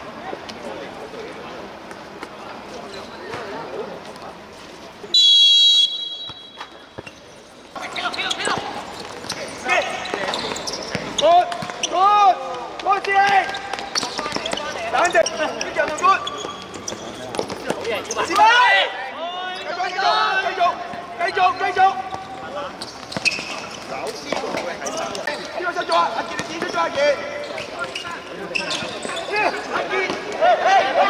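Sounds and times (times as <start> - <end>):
referee's whistle blast: 5.1 - 6.8
ball kicked and bouncing on court: 6.2 - 11.9, 26.3 - 27.2
players shouting: 18.0 - 22.4, 25.6 - 31.0.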